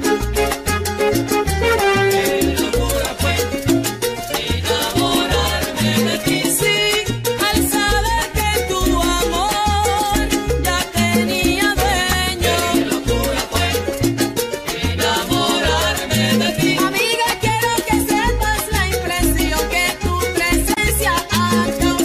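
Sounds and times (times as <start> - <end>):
instrumental salsa music: 0.0 - 22.0.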